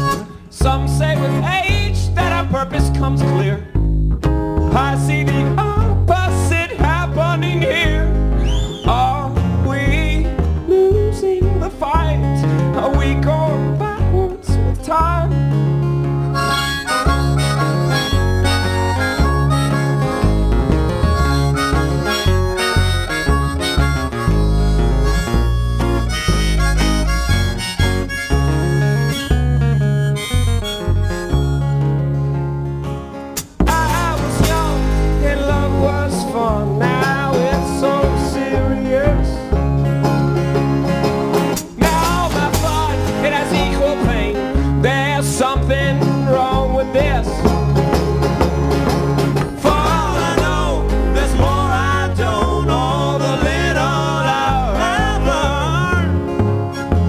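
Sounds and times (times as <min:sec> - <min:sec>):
harmonica solo: 0:00.0 - 0:00.6, 0:16.0 - 0:44.8, 0:47.4 - 0:57.0
man singing: 0:00.0 - 0:03.8, 0:04.6 - 0:15.6, 0:33.6 - 0:39.6, 0:41.7 - 0:47.6, 0:49.5 - 0:56.3
banjo: 0:00.0 - 0:57.0
strummed acoustic guitar: 0:00.0 - 0:57.0
upright bass: 0:00.0 - 0:57.0.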